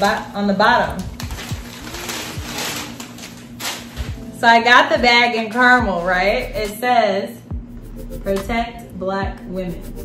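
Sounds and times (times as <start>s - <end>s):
tissue paper rustling: 0.0s - 4.4s
quiet background music: 0.0s - 10.0s.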